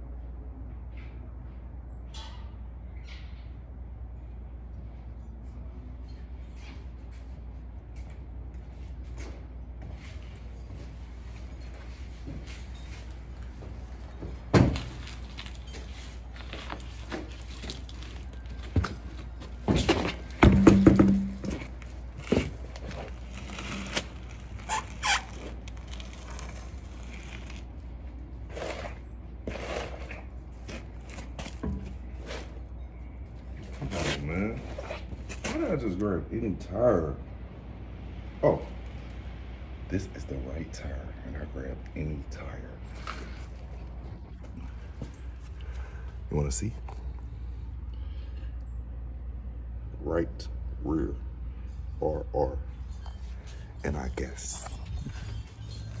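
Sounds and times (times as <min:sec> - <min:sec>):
knocks and thuds of car wheel handled: 0:19.6 - 0:22.6.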